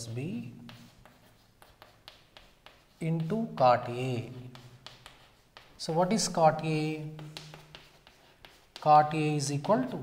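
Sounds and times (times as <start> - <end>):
chalk scratching on chalkboard: 0.0 - 10.0.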